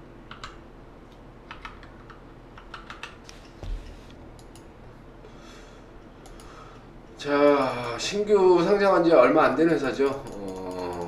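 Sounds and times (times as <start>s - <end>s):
computer keyboard typing: 0.3s - 0.6s, 1.5s - 3.2s, 4.4s - 4.7s, 10.0s - 11.0s
soft low thump: 3.6s - 4.0s.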